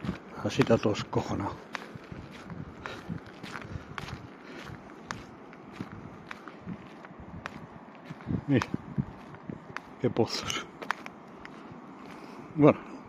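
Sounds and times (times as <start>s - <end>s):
footsteps on wet gravel: 0.0s - 12.4s.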